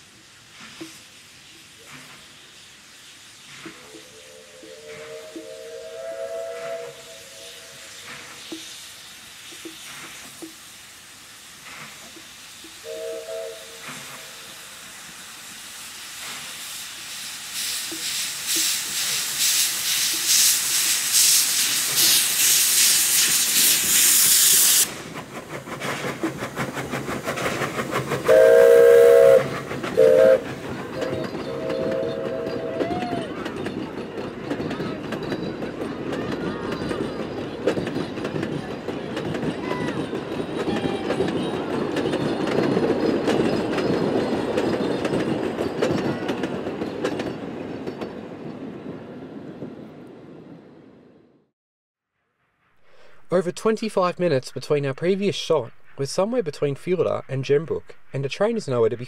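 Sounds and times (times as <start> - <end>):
hiss of steam: 0.0 - 34.2
train rumble: 0.0 - 51.5, 52.7 - 59.0
steam locomotive whistle: 3.7 - 8.4, 12.8 - 14.8, 28.2 - 33.4
rail clatter: 17.6 - 50.7.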